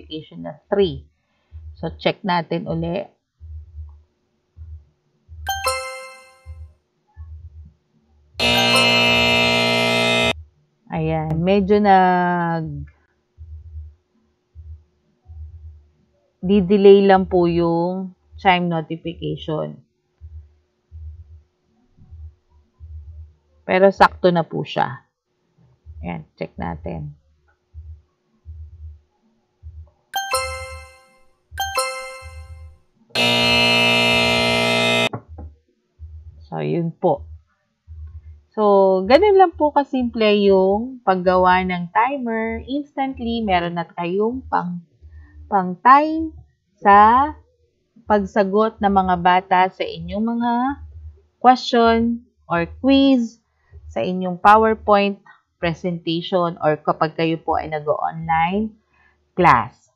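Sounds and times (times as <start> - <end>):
steady buzzer tone: 5.5 - 6.5, 8.4 - 10.4, 30.2 - 32.6, 33.2 - 35.1.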